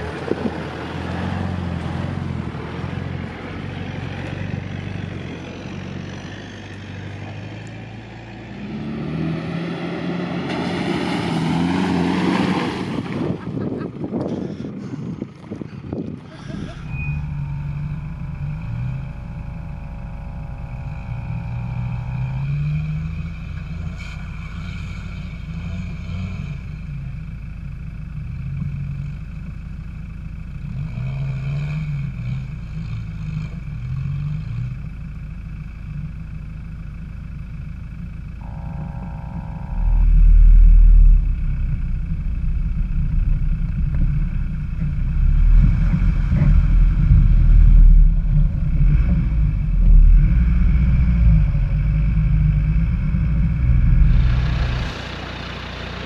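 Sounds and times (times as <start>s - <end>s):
off-road vehicle engine revving: 0.0s - 56.0s
high whine: 16.4s - 27.1s, 38.1s - 56.0s.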